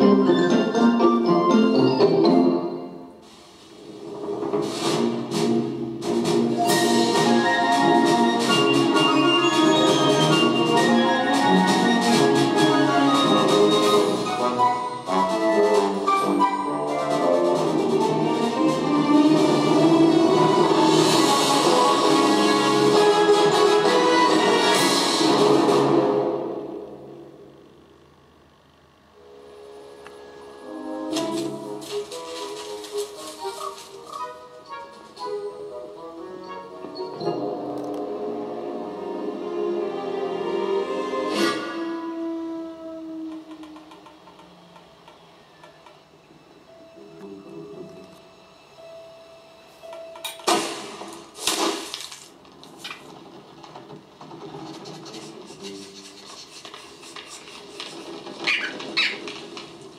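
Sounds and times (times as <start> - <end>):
orchestral music through small speaker: 0.0 - 27.2, 29.2 - 43.2.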